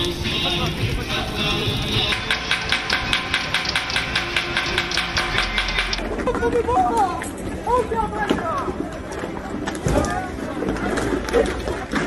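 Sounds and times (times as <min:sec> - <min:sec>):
rapid metallic banging: 0:01.4 - 0:06.1.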